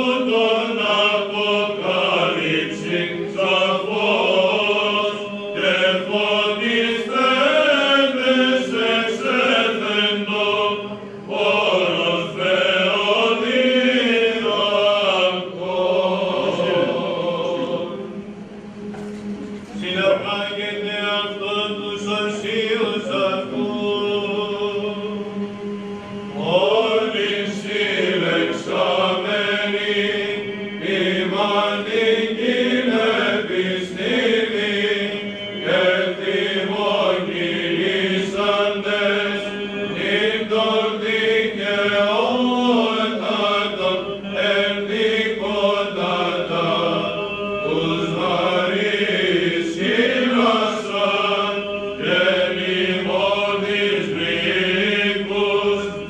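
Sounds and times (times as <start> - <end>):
men chanting a melody: 0.0 - 18.1, 19.6 - 25.4, 26.3 - 56.0
held low vocal drone: 0.0 - 56.0.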